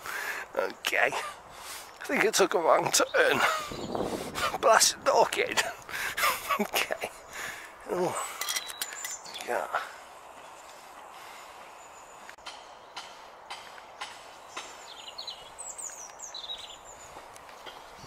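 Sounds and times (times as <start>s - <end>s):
small birds chirping: 0.0s - 18.0s.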